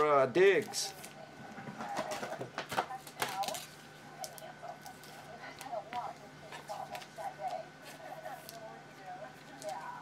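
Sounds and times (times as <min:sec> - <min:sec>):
faint voices: 0:00.4 - 0:10.0.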